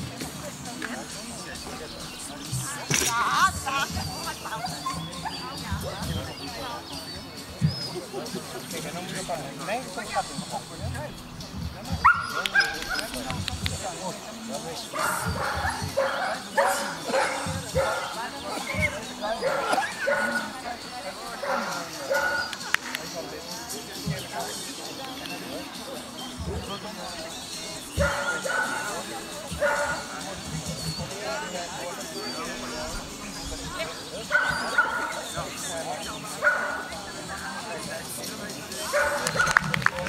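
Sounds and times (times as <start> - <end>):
dog barking: 12.0 - 13.1, 15.0 - 18.8, 19.4 - 20.5, 21.4 - 22.6, 28.0 - 28.9, 29.6 - 30.1, 34.3 - 35.2, 36.4 - 37.0, 38.9 - 39.7.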